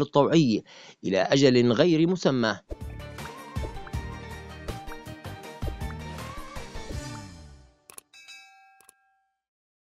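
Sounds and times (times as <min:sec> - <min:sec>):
bright bell-like ding: 0:08.1 - 0:09.4.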